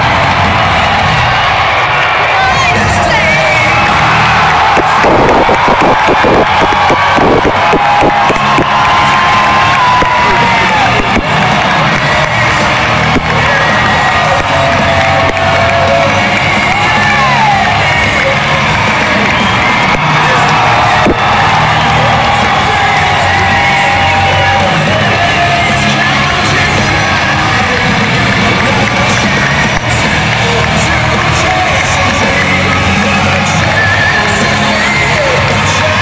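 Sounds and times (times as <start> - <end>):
crowd cheering and shouting: 0.0 - 36.0
loud music over sound system: 0.0 - 36.0.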